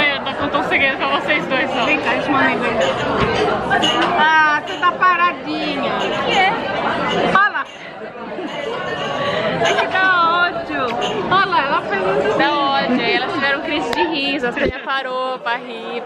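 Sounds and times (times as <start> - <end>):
murmur of dining room: 0.0 - 16.0
women laughing and chattering: 0.0 - 16.0.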